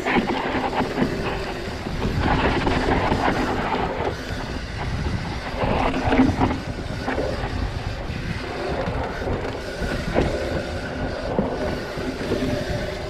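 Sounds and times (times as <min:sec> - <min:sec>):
bike rattling over bumps: 0:00.0 - 0:13.0.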